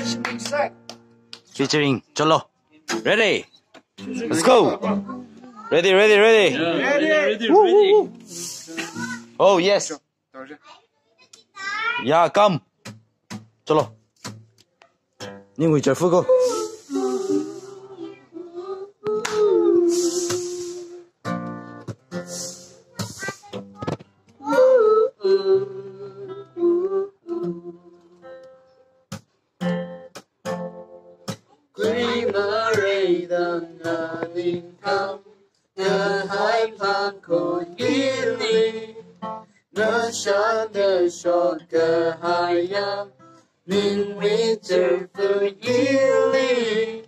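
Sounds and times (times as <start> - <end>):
acoustic guitar: 0.0 - 9.7, 11.4 - 47.0
man singing: 4.0 - 5.0, 16.1 - 18.2, 19.2 - 21.0, 31.8 - 35.2, 35.8 - 39.0, 39.8 - 43.1, 43.7 - 47.0.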